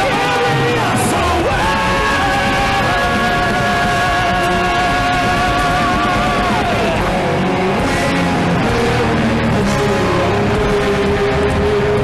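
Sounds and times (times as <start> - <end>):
male vocals holding high note: 0.0 - 12.0
power metal band playing live: 0.0 - 12.0.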